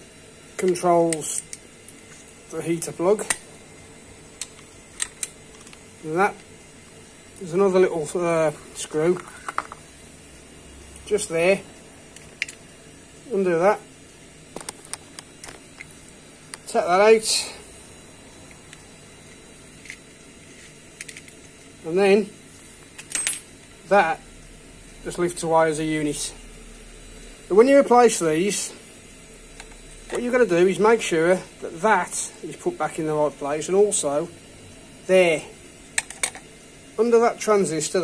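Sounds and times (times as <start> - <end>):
wiring connectors clicking: 4.4 - 6.5, 14.5 - 15.9.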